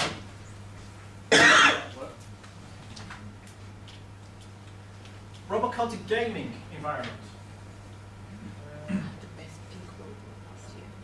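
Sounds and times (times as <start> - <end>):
man coughing: 1.3 - 1.9, 8.8 - 9.2.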